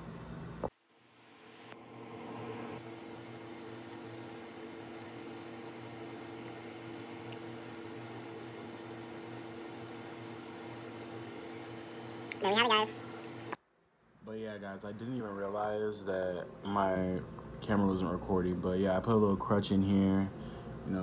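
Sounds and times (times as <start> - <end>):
low machine hum: 0.0 - 21.0.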